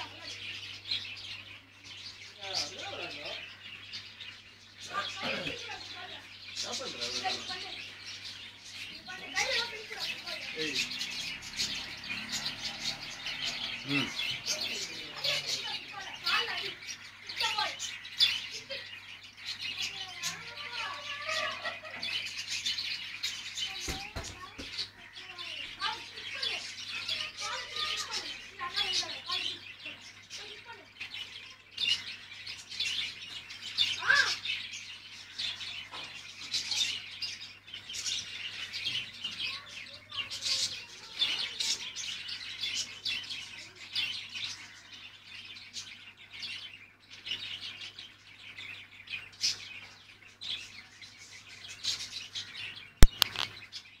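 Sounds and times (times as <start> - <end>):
small birds chirping: 0.0 - 54.0
sharp click: 53.0 - 53.5.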